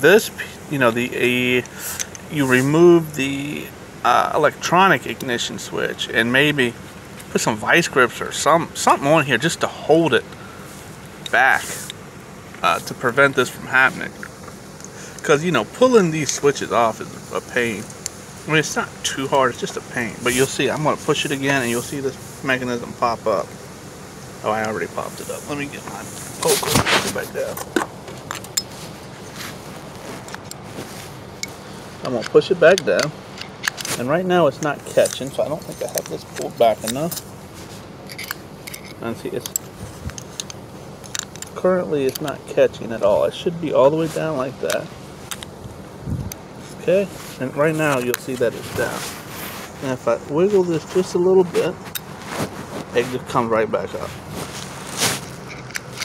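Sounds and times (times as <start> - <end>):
low hum: 0.0 - 56.0
scraping rustle: 8.9 - 56.0
metal poker clicks and scrapes: 38.0 - 42.2, 55.1 - 56.0.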